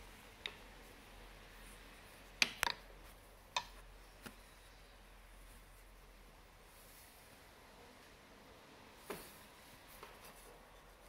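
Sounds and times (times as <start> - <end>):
loom clicks and taps: 0.4 - 0.7, 2.4 - 4.4.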